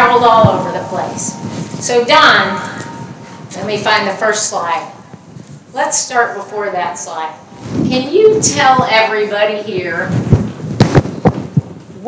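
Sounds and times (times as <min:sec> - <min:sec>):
microphone handling thumps: 0:07.6 - 0:09.2, 0:09.8 - 0:12.0.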